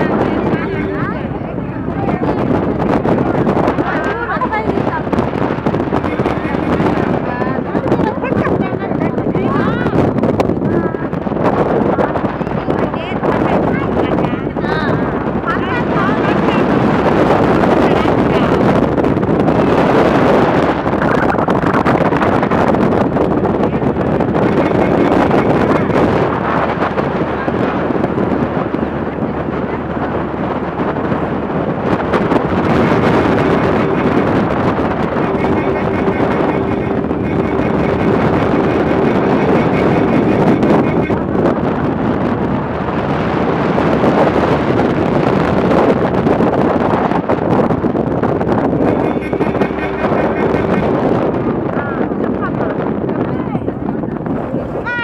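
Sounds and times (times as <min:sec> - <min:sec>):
vehicle running and road noise: 0:00.0 - 0:55.0
wind buffeting microphone: 0:00.0 - 0:55.0.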